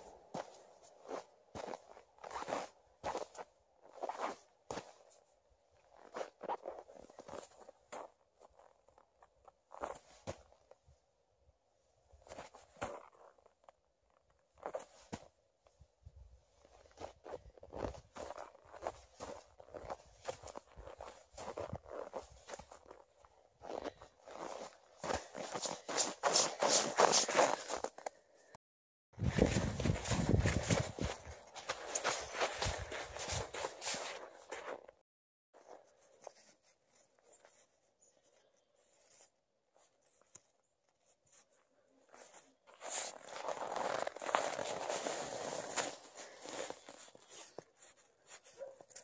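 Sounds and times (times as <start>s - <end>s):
boots crunching on snow: 0.0s - 5.2s, 5.8s - 10.6s, 16.6s - 28.1s, 29.2s - 35.0s, 42.1s - 49.0s
paws scratching on snow: 23.7s - 27.9s, 29.2s - 34.9s, 35.6s - 40.4s, 41.0s - 49.0s.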